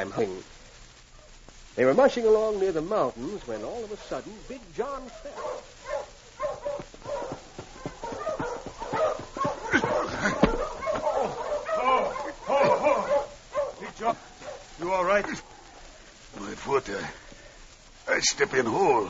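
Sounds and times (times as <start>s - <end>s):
sled dogs barking and yelping: 4.7s - 16.2s.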